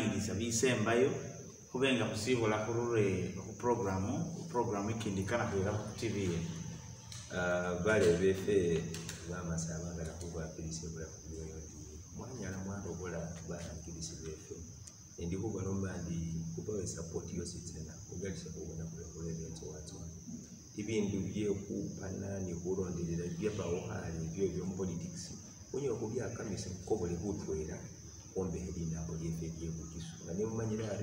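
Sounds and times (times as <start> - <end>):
man talking: 0.0 - 6.7, 7.3 - 20.2, 20.8 - 31.0.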